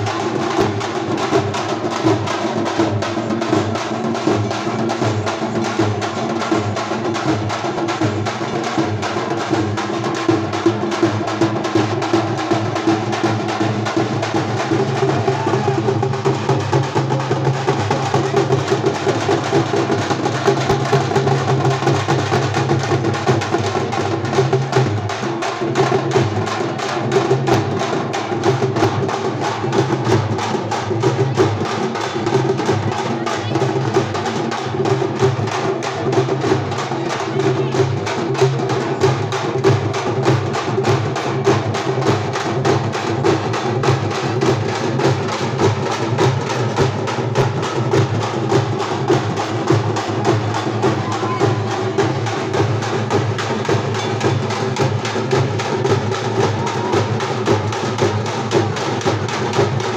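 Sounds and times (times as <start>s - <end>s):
frame drums beaten in fast rhythm: 0.0s - 59.9s
crowd voices: 10.7s - 20.6s, 44.0s - 59.8s.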